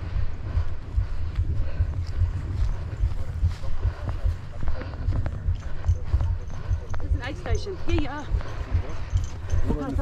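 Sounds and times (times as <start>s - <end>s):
running footfalls on grass: 0.0s - 8.9s
voices talking: 1.8s - 10.0s.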